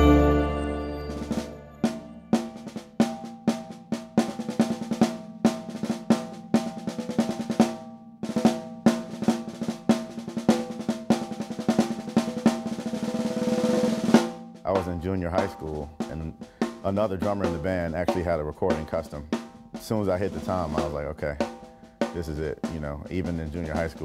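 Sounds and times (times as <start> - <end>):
bass drum: 14.2 - 24.0.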